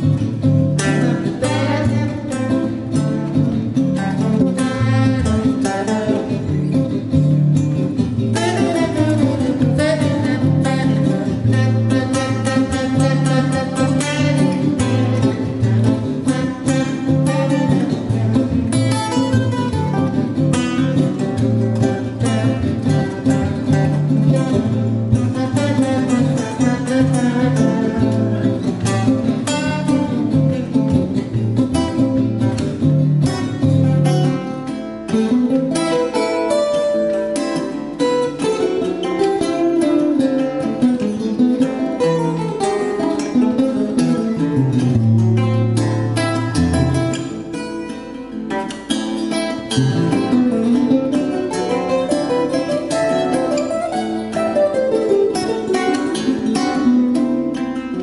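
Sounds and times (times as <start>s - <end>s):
deep bass guitar notes: 0.0s - 34.5s, 43.4s - 47.6s
picked acoustic guitar melody: 0.0s - 58.0s
strummed acoustic guitar chords: 0.0s - 58.0s.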